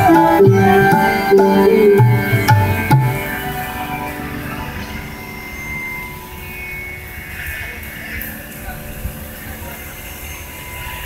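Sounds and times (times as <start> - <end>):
indian classical instrumental ensemble: 0.0 - 11.0.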